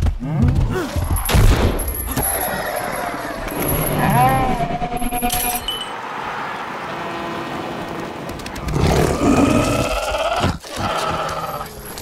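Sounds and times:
creature roaring: 8.7s - 12.0s.

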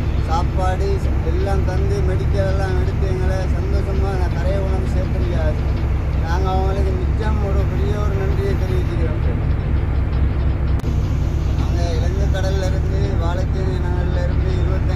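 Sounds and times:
loud steady low rumble: 0.0s - 14.9s
person talking: 0.2s - 5.6s, 11.6s - 14.9s.

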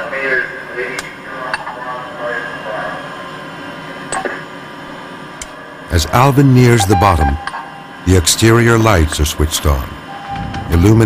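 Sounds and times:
voice over radio link: 5.9s - 7.4s.

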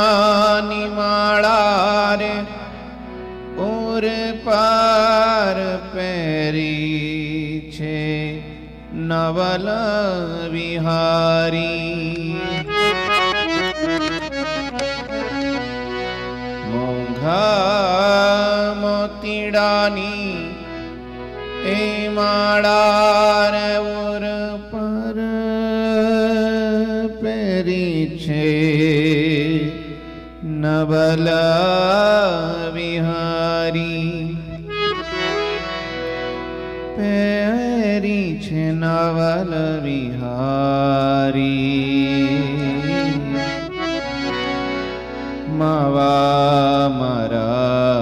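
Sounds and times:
man singing devotional song: 0.0s - 36.2s, 36.8s - 48.0s
reedy harmonium accompaniment: 0.0s - 48.0s.

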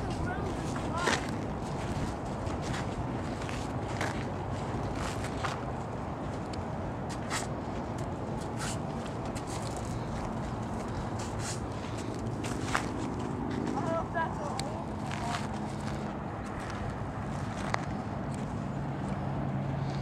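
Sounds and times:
footsteps on dirt: 0.0s - 6.4s, 7.0s - 19.2s
low outdoor rumble: 0.0s - 20.0s.

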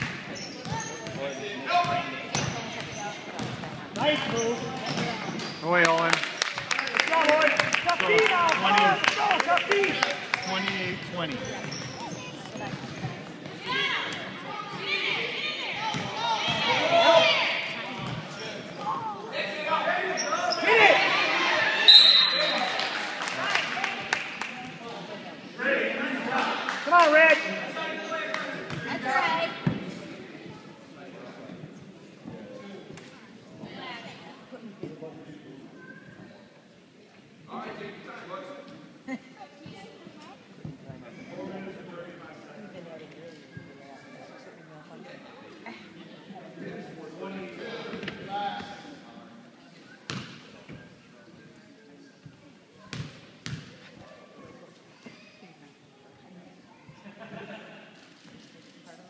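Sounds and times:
voices echoing in gym: 0.0s - 59.0s.

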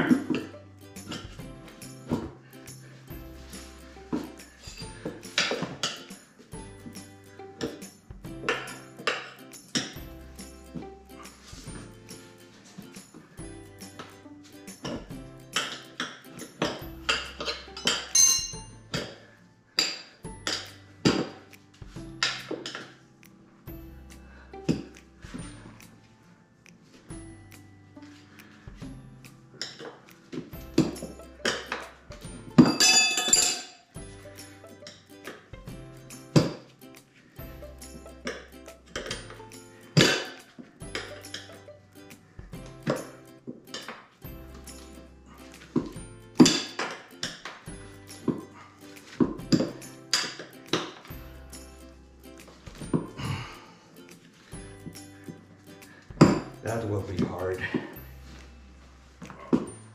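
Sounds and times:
background music with bass line: 0.0s - 15.7s, 16.4s - 19.1s, 20.3s - 22.7s, 23.7s - 26.2s, 27.1s - 32.8s, 34.0s - 40.2s, 40.8s - 43.4s, 44.2s - 59.9s.

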